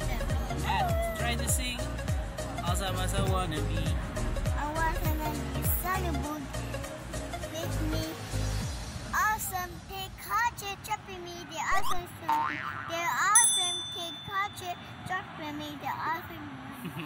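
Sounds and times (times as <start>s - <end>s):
child talking in pretend voice: 0.0s - 1.2s, 4.5s - 6.5s, 7.5s - 8.2s, 9.1s - 16.8s.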